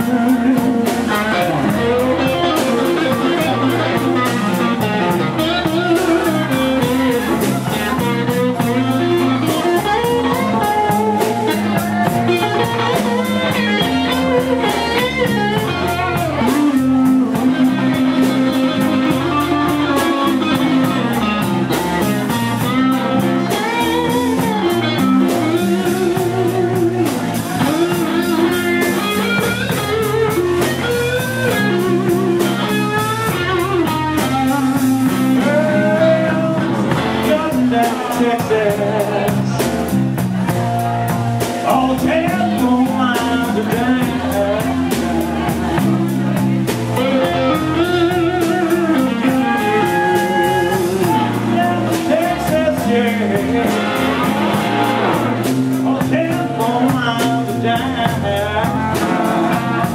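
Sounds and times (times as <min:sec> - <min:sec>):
bass guitar: 0:00.0 - 0:59.9
drum kit: 0:00.0 - 0:59.9
electric guitar lead: 0:00.0 - 0:59.9
live rock band: 0:00.0 - 0:59.9.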